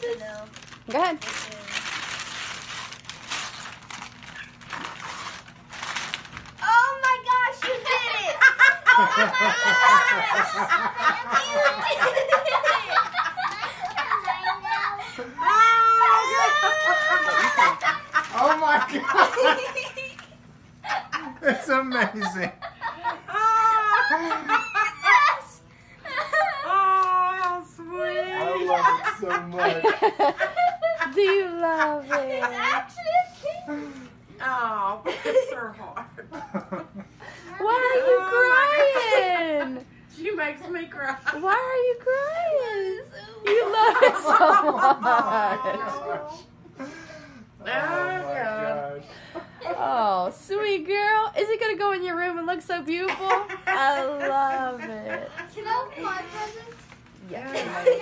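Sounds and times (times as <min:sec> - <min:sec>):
wrapping paper tearing: 0:00.0 - 0:07.2, 0:17.2 - 0:18.7
girl crying: 0:14.8 - 0:17.9.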